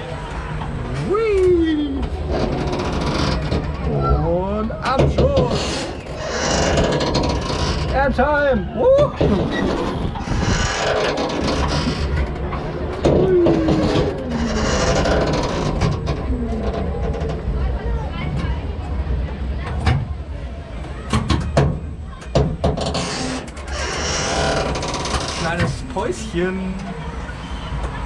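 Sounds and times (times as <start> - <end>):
low rumble: 8.8 - 20.7
wind rushing over microphone: 9.1 - 14.4.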